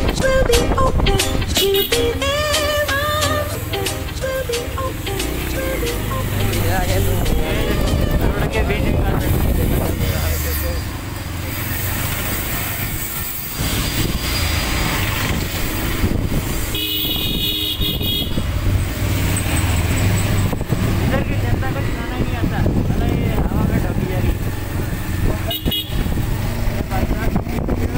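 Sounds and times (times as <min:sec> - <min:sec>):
motorcycle engine and road rumble: 0:00.0 - 0:27.9
wind on microphone: 0:00.0 - 0:27.9
vehicle horn honking: 0:01.6 - 0:03.2, 0:06.4 - 0:09.2, 0:16.7 - 0:18.6, 0:25.5 - 0:26.2.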